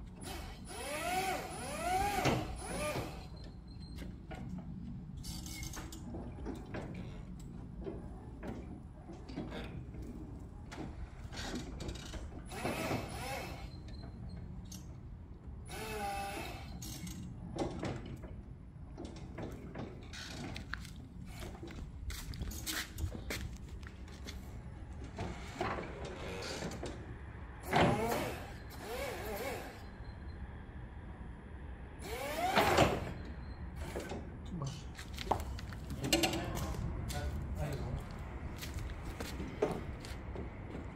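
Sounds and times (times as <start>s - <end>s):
forklift clatter and whirring: 0.0s - 40.9s
electric forklift motor whining: 32.0s - 33.2s.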